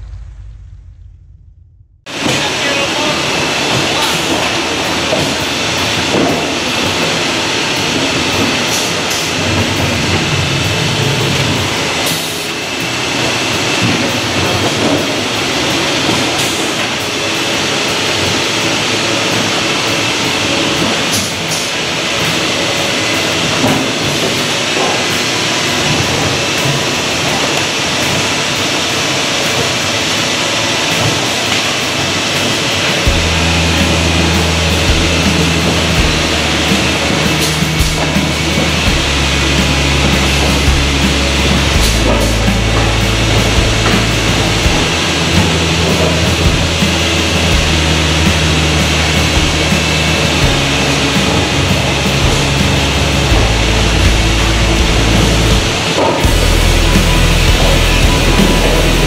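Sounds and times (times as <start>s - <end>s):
factory machinery running: 2.1s - 59.0s
background music with deep bass: 32.4s - 59.0s.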